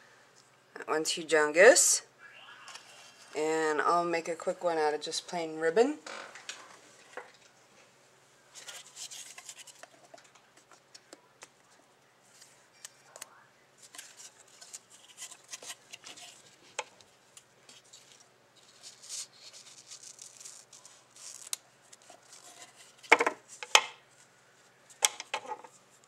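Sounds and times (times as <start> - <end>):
ribbon rustling: 17.6 - 25.0.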